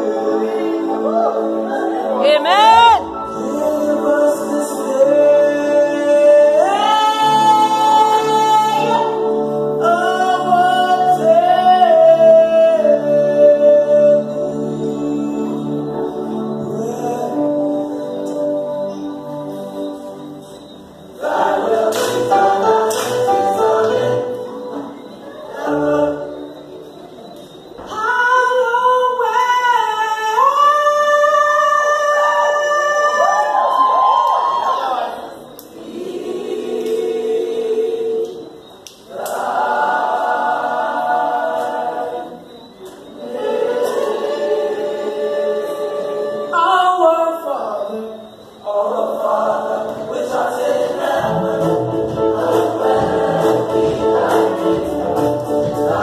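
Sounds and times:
choir singing unaccompanied: 0.0 - 27.2, 28.4 - 56.0.

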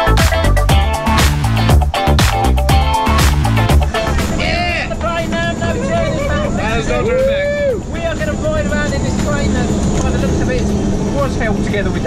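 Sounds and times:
people chatting and laughing: 3.5 - 12.0
small plane engine and propeller: 8.0 - 12.0.

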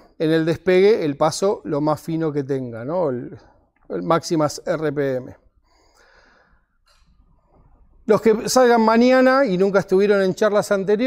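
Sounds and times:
faint breathing: 5.4 - 7.8.

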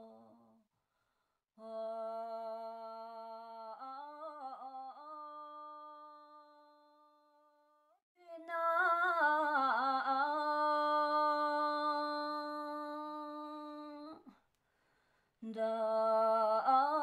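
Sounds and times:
woman singing unaccompanied: 0.0 - 0.6, 1.6 - 7.6, 8.2 - 14.4, 15.4 - 17.0.

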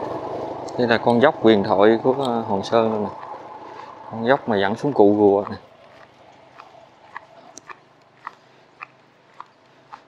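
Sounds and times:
low outdoor hiss: 0.0 - 9.9
faint footsteps on concrete: 3.1 - 10.0.

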